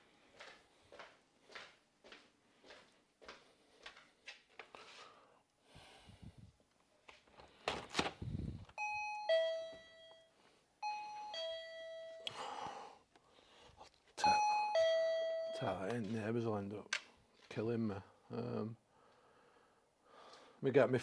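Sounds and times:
electronic two-tone chime: 0:08.8 - 0:12.3, 0:14.2 - 0:15.9.

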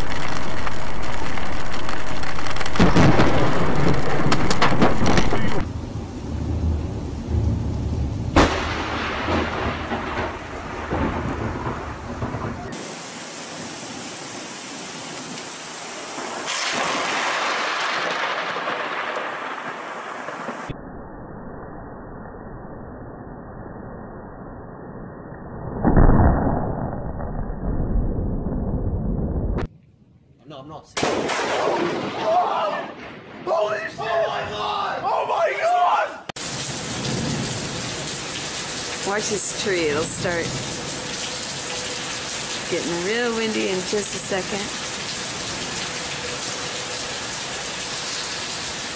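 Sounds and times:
heavy rain hissing: 0:00.0 - 0:20.7, 0:36.4 - 0:48.9
thunder rumbling: 0:00.0 - 0:20.8, 0:36.4 - 0:48.9.

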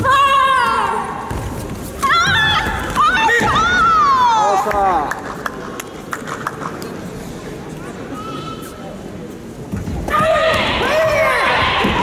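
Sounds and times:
murmur of sports hall: 0:00.0 - 0:12.0.

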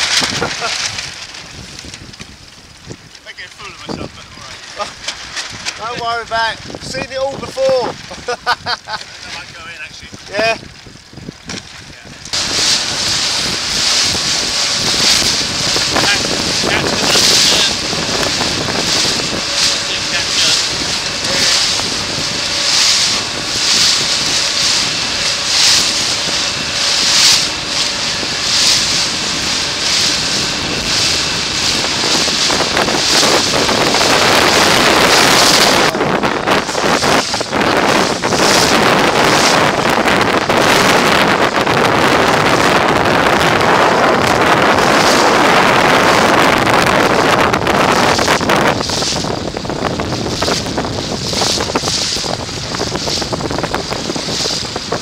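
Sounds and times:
water rushing past boat: 0:00.0 - 0:55.0
wind buffeting microphone: 0:00.0 - 0:55.0.

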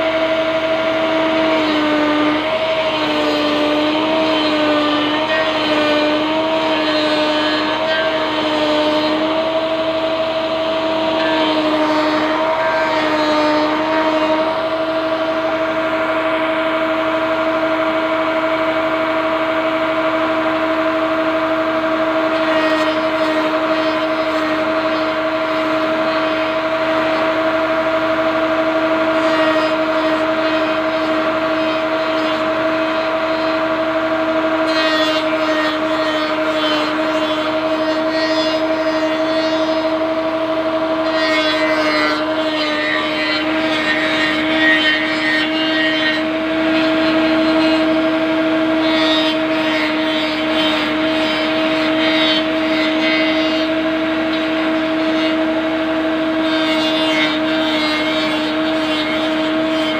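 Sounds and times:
electric motor humming: 0:00.0 - 0:59.9
rasping wood cutting: 0:00.0 - 0:59.9.

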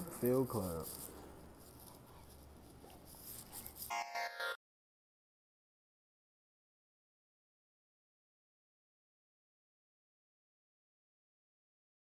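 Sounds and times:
faint background noise: 0:00.0 - 0:04.0.

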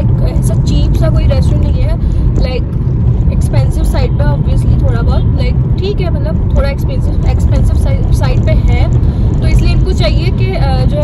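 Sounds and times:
woman talking: 0:00.0 - 0:02.7, 0:03.3 - 0:11.0
car engine rumble: 0:00.0 - 0:11.0
road noise: 0:00.0 - 0:11.0.

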